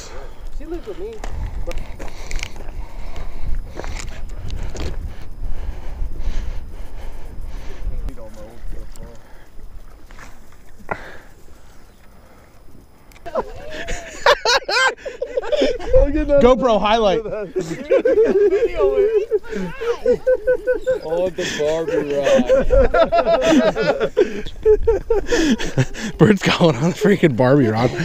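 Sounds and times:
wind buffeting microphone: 0.0s - 10.1s, 15.5s - 26.2s
men talking: 7.8s - 9.5s, 13.3s - 28.0s.

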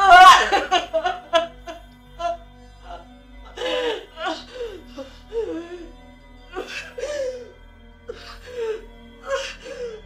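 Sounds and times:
woman sobbing: 0.0s - 5.9s
soft background music: 0.0s - 10.0s.

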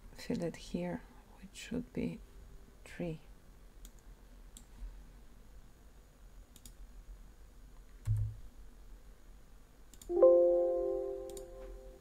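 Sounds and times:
faint low hum: 0.0s - 12.0s
computer mouse clicks: 3.8s - 4.8s, 6.5s - 6.8s, 7.8s - 8.3s, 9.9s - 10.1s.

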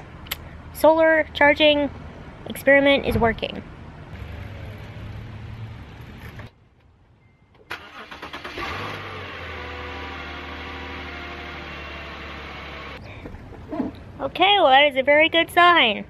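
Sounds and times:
car engine cranking and idling: 4.1s - 14.2s.

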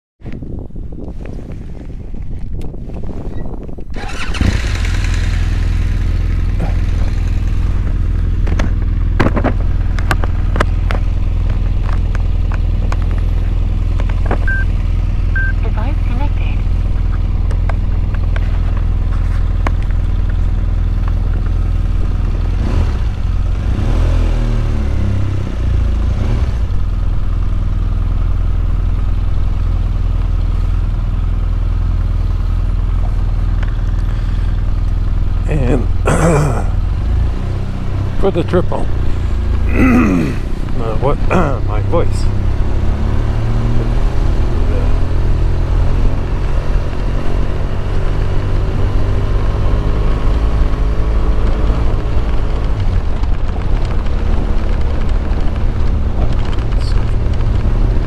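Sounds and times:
motorcycle engine at low revs: 0.2s - 58.0s.

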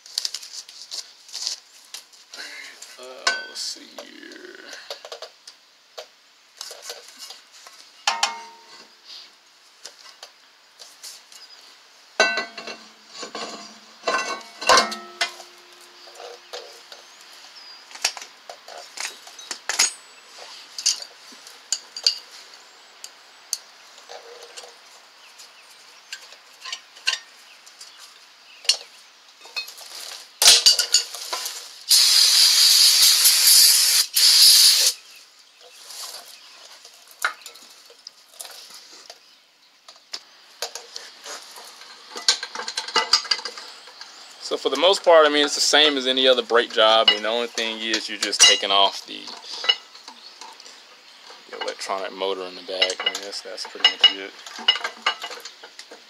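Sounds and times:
metal tools clinking and knocking: 3.2s - 3.7s, 8.1s - 8.9s, 12.2s - 16.7s, 18.0s - 20.1s, 20.8s - 22.4s, 26.1s - 28.0s, 30.4s - 31.5s, 41.6s - 44.1s, 45.4s - 50.6s, 52.7s - 56.0s
spray can hissing: 31.9s - 35.0s.

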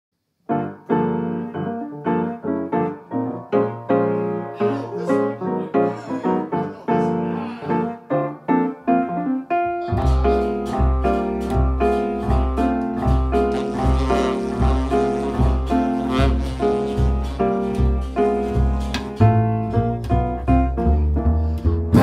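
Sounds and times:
jazz piano chords: 0.4s - 22.0s.

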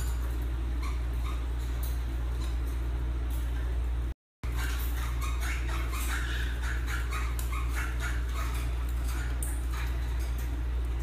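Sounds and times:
parrots chattering calls: 4.5s - 10.4s.

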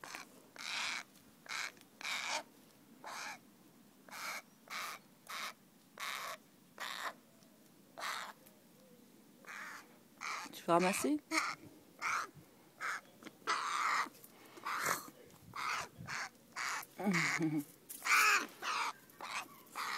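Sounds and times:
crow cawing: 0.0s - 2.4s, 4.1s - 7.2s, 8.0s - 8.4s, 9.5s - 10.5s, 11.3s - 15.0s, 15.6s - 17.4s, 18.0s - 19.9s.

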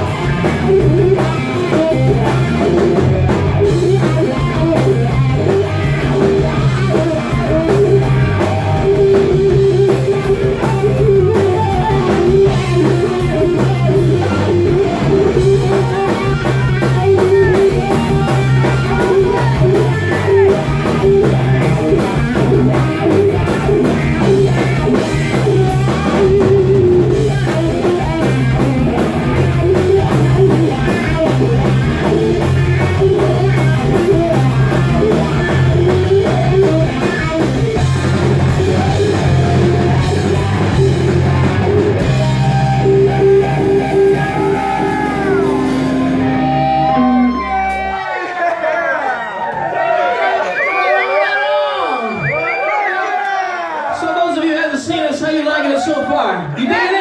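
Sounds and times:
drum kit: 0.0s - 48.2s
electric guitar: 0.0s - 48.2s
bass guitar: 0.0s - 48.6s.

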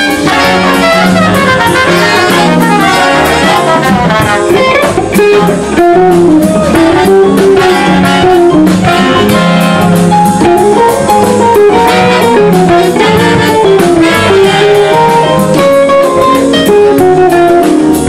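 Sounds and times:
electric guitar single-note line: 0.0s - 18.0s
jazz band playing swing: 0.0s - 18.0s.

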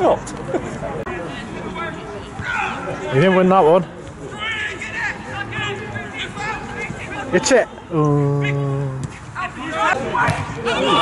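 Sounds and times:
men exclaiming and talking: 0.0s - 11.0s
spectators chattering: 0.0s - 11.0s.

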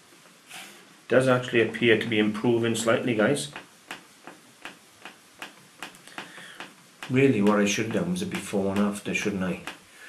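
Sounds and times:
faint rubbing hiss: 0.0s - 10.0s.

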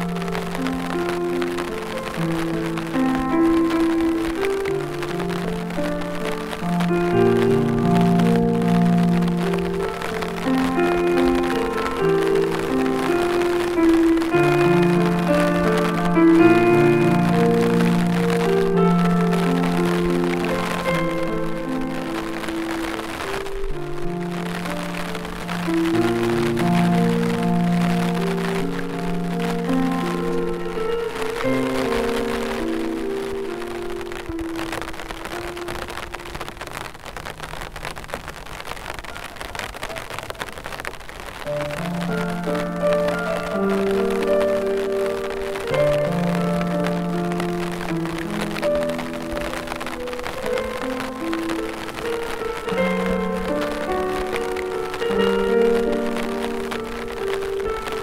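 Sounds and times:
rain pattering: 0.0s - 58.0s
slow piano music: 0.0s - 58.0s.

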